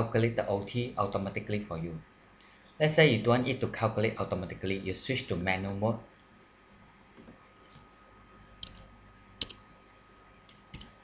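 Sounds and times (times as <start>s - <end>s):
computer mouse clicks: 7.1s - 7.9s, 8.6s - 9.6s, 10.5s - 11.0s
keyboard keystrokes: 8.6s - 9.6s, 10.5s - 11.0s.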